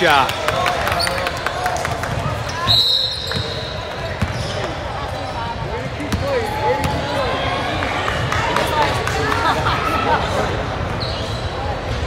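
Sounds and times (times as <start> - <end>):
echoing chatter of voices: 0.0 - 12.0.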